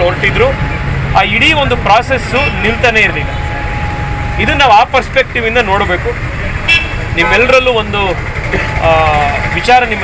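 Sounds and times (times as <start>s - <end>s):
man speaking: 1.2s - 3.5s, 4.4s - 6.2s, 7.1s - 10.0s.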